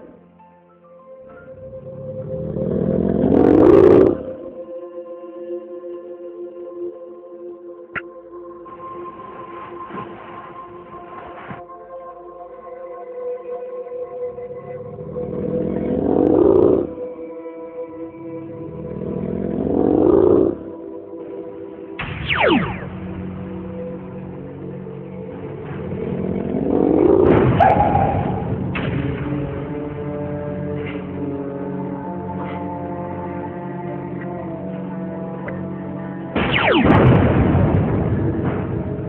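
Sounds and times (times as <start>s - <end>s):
soft background music: 0.0s - 39.0s
sustained synth drone: 1.4s - 38.9s.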